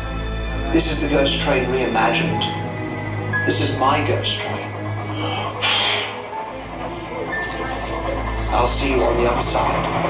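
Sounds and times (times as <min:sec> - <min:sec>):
soundtrack music: 0:00.0 - 0:10.0.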